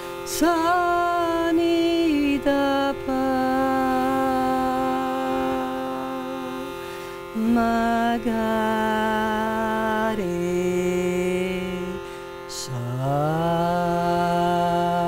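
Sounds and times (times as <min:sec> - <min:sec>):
shruti box drone: 0:00.0 - 0:15.0
woman taking a breath: 0:06.7 - 0:07.3.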